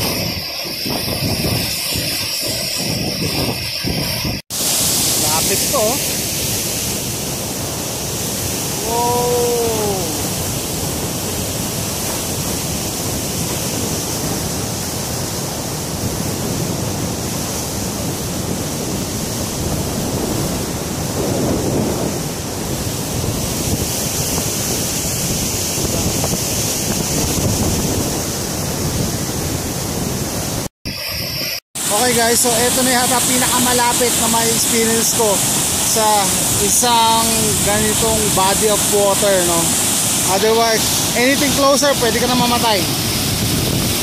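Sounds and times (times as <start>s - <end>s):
water rushing over rocks: 0.0s - 44.0s
wind on microphone: 0.0s - 44.0s.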